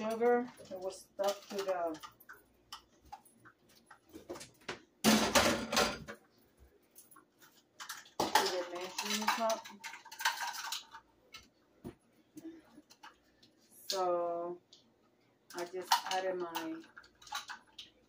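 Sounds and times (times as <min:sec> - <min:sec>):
utensils and dishes clattering: 0:00.0 - 0:06.2, 0:07.4 - 0:11.5, 0:15.5 - 0:18.0.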